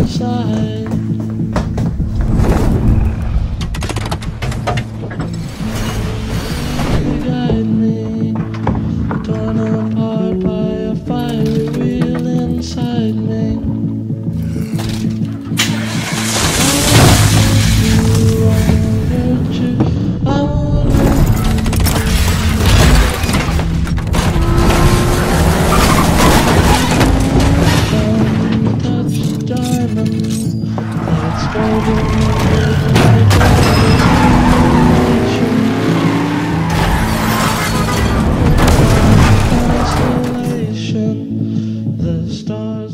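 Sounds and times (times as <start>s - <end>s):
background music: 0.0s - 42.9s
tyres skidding: 14.7s - 40.8s.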